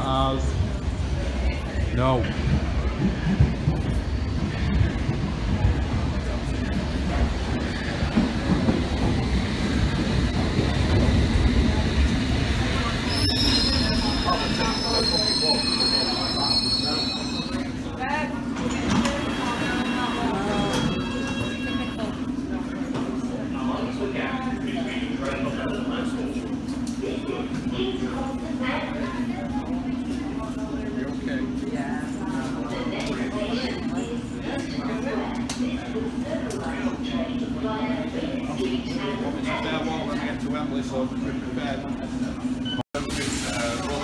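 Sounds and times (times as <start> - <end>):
train low hum: 0.0 - 42.8
train rumbling into platform: 0.0 - 44.0
high brake squeal: 13.0 - 17.7.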